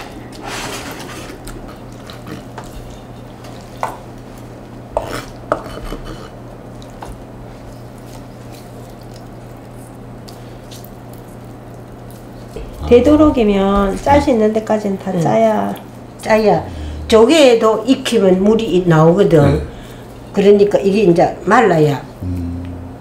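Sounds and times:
steady low hum: 0.0 - 23.0
knife scraping on cutting board: 5.0 - 6.4.

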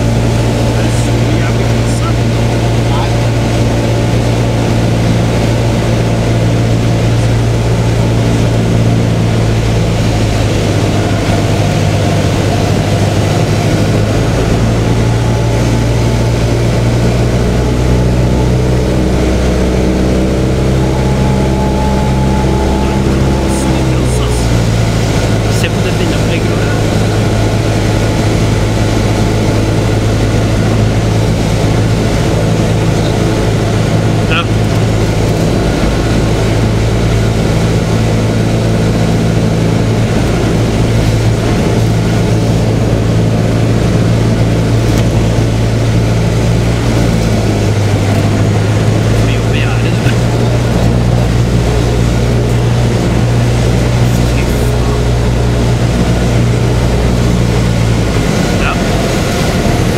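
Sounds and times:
propeller plane engine droning: 0.0 - 59.9.

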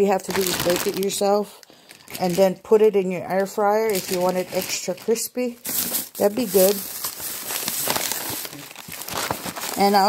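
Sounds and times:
plastic bag rustling: 0.0 - 2.7, 3.3 - 10.0.

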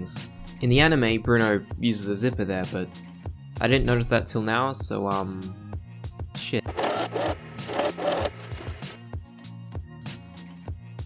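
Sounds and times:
electric sewing machine stitching: 6.6 - 9.0.

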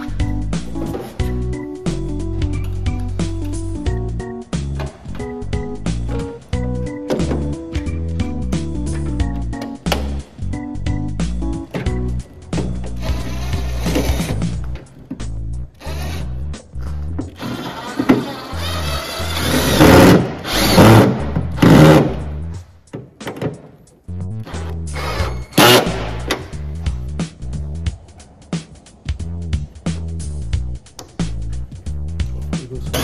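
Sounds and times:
background music: 0.0 - 33.0
cordless drill running: 17.4 - 21.0.

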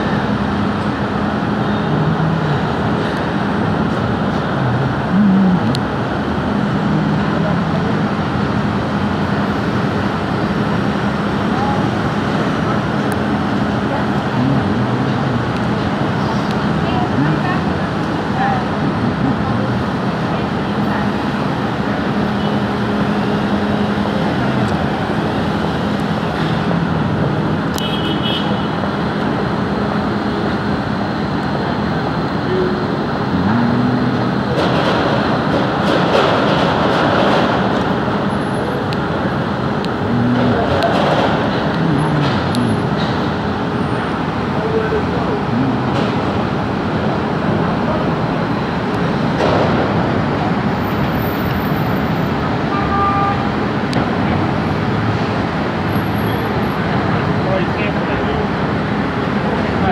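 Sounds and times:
construction machinery din: 0.0 - 59.9
street traffic: 0.0 - 59.9.

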